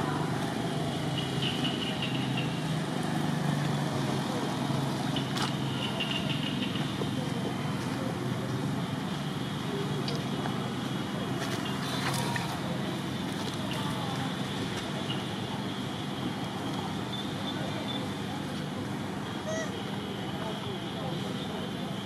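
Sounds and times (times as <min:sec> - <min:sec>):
distant road traffic: 0:00.0 - 0:22.0
faint murmur of voices: 0:00.0 - 0:22.0.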